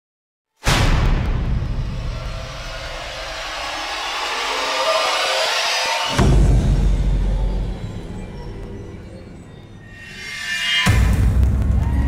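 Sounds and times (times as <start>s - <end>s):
low rumble: 0.9s - 12.0s
rushing whoosh: 1.3s - 11.3s.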